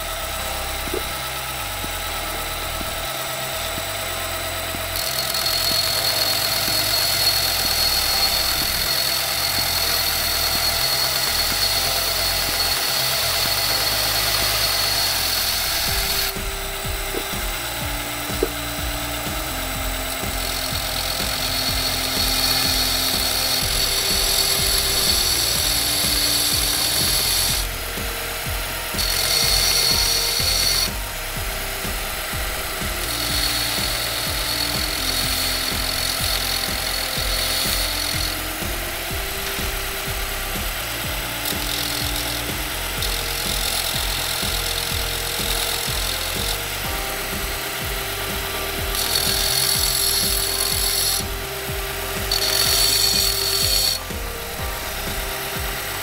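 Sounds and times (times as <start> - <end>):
background music: 0.0 - 56.0
belt grinder grinding steel: 0.0 - 56.0.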